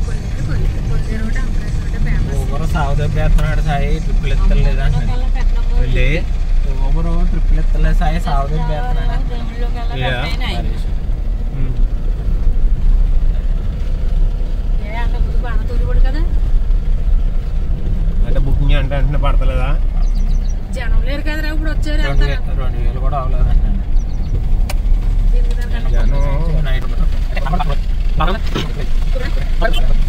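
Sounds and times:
people talking: 0.0s - 10.9s, 11.5s - 11.8s, 14.8s - 16.4s, 20.8s - 23.8s, 25.3s - 30.0s
car rumbling on dirt road: 0.0s - 30.0s.

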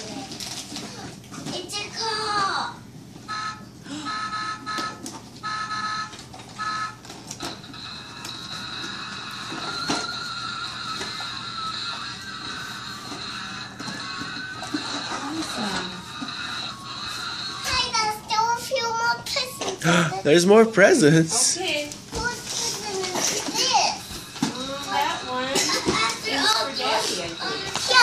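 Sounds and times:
electronic toy beeps: 3.3s - 7.0s.

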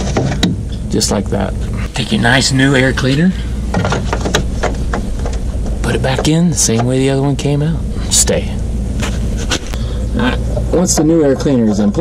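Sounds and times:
low rumble: 0.0s - 11.3s.

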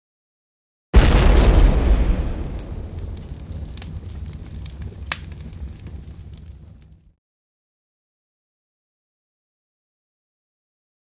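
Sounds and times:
low explosion rumble with crackles: 1.0s - 7.2s.

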